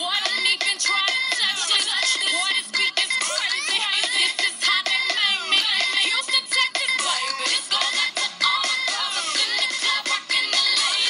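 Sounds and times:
dance music from small speaker: 0:00.0 - 0:11.0.

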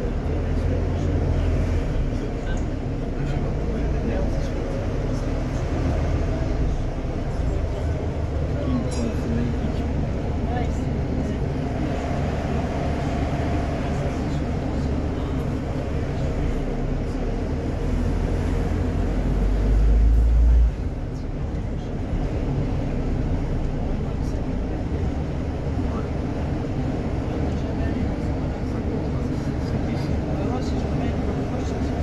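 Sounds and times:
bus engine and road rumble: 0:00.0 - 0:32.0.

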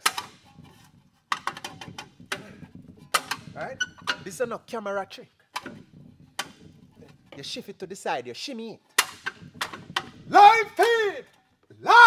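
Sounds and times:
brake rotor knocking and scraping: 0:00.0 - 0:04.6, 0:05.6 - 0:07.7, 0:08.9 - 0:10.5.

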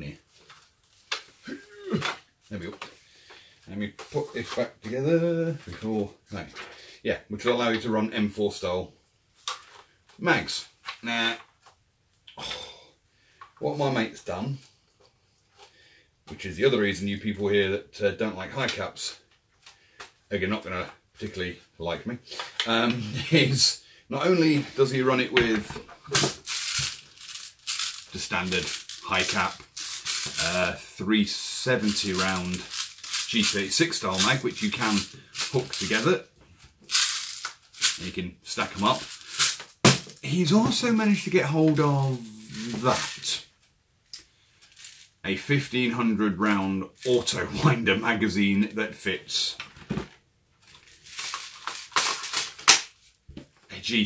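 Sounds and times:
plastic magazine clattering: 0:26.1 - 0:30.4, 0:50.7 - 0:53.0
magazine rattling with loose bbs: 0:26.1 - 0:30.7, 0:31.8 - 0:36.1, 0:36.8 - 0:40.3, 0:50.6 - 0:53.0.

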